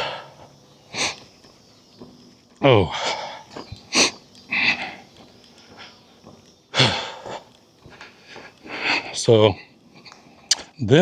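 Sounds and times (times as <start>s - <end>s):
man sniffing and exhaling: 0.0s - 1.3s.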